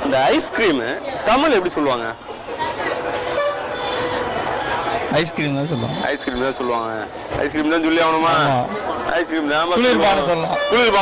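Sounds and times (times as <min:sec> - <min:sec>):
busy street background: 0:00.0 - 0:11.0
distant vehicle horn: 0:03.1 - 0:04.4, 0:05.6 - 0:06.7, 0:10.4 - 0:11.0.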